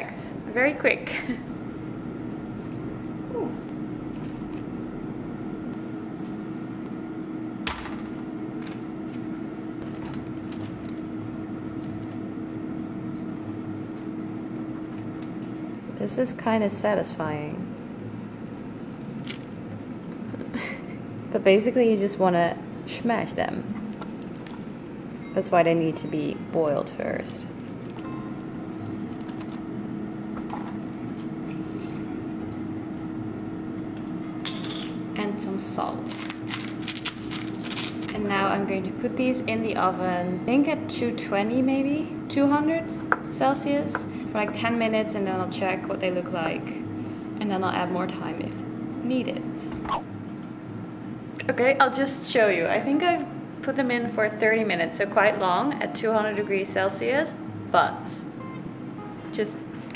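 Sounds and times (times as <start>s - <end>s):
air fryer humming: 0.0s - 59.9s
held tone: 28.0s - 29.2s.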